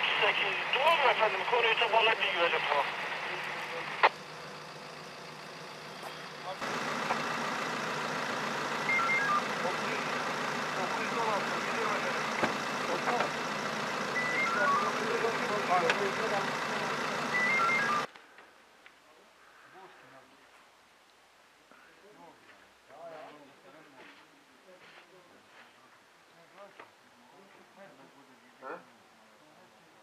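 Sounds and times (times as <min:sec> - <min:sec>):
falling electronic beeps: 0:08.8 - 0:10.0, 0:14.1 - 0:15.8, 0:17.3 - 0:18.1.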